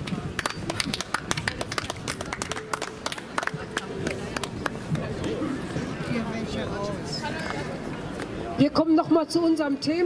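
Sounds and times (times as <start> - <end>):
audience clapping: 0.0 - 4.8.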